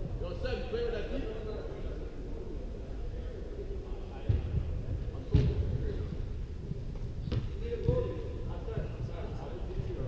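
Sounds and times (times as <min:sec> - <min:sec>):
faint shouts echoing: 0:07.5 - 0:08.9.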